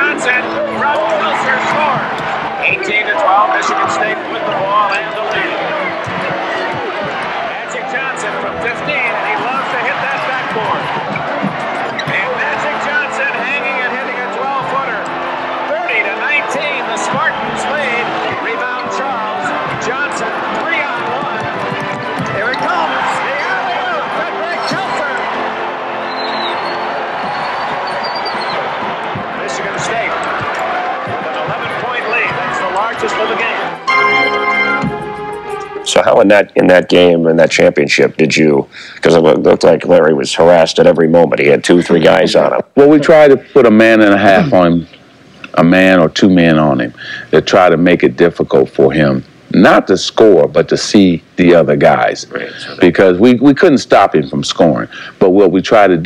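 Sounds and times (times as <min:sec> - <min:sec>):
crowd noise: 0:00.0 - 0:56.0
basketball bouncing on court: 0:10.0 - 0:12.2.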